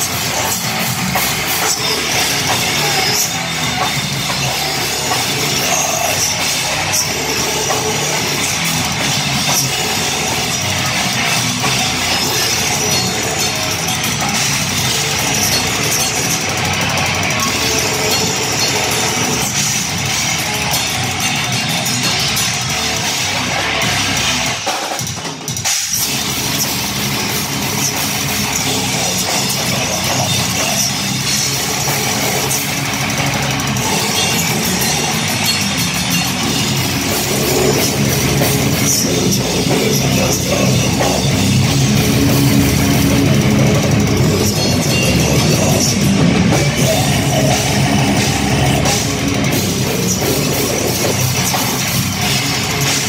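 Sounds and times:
bass guitar: 0:00.0 - 0:53.0
drum kit: 0:00.0 - 0:53.0
electric guitars: 0:00.0 - 0:53.0.

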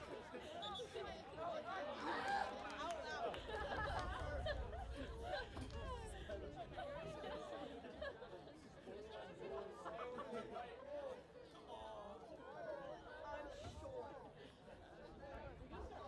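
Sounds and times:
sports crowd chatter: 0:00.0 - 0:16.0.

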